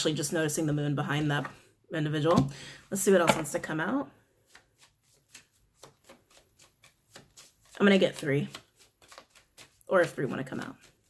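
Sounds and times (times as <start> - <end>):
cards being shuffled: 4.4 - 11.0.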